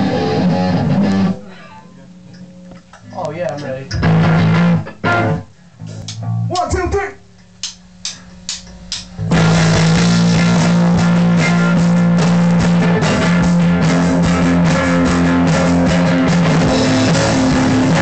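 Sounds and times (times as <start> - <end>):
rock band playing: 0.0 - 1.8, 3.9 - 6.5, 8.3 - 18.0.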